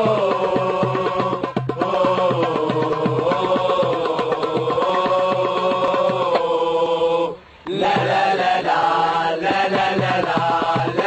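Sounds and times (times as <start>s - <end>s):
drum beat: 0.0s - 6.5s, 7.7s - 11.0s
crowd chanting in unison: 0.0s - 11.0s.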